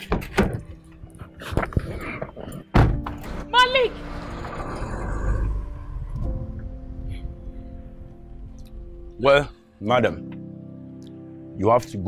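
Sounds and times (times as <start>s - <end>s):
film music: 0.0s - 12.0s
woman shouting: 3.5s - 4.0s.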